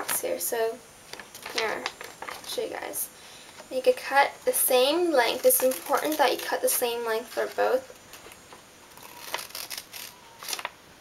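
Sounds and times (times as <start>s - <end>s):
scissors cutting paper: 9.0s - 10.7s.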